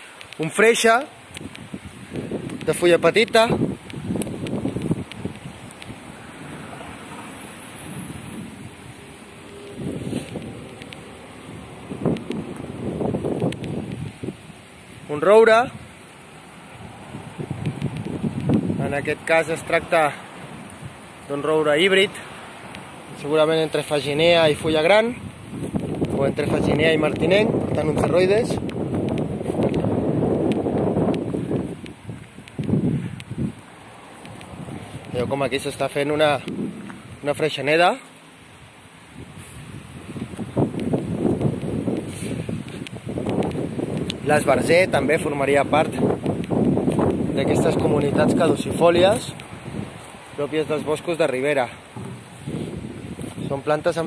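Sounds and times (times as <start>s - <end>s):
light clicks: 0.0s - 0.5s, 1.3s - 6.0s, 9.4s - 11.1s, 12.1s - 12.7s, 13.3s - 14.2s, 17.6s - 18.7s, 25.2s - 26.3s, 27.1s - 33.6s, 34.2s - 35.3s, 40.2s - 44.2s, 46.2s - 48.2s
steady rushing hiss: 0.0s - 54.0s
dry grass and shrubs rustling: 1.2s - 19.0s, 24.1s - 44.8s, 45.7s - 50.5s, 51.8s - 53.6s
wind buffeting microphone: 1.2s - 54.0s.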